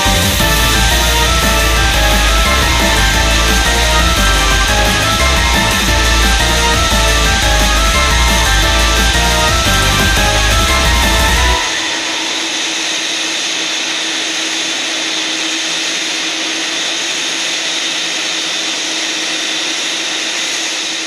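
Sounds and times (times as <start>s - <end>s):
music: 0.0s - 13.3s
jet engines whining: 0.0s - 21.0s.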